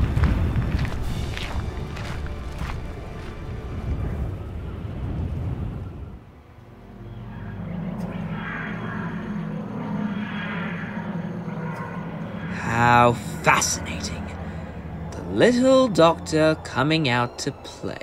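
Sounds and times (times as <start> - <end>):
low rumbling ambience: 0.0 - 18.0
music: 0.0 - 18.0
steady low drone: 0.0 - 18.0.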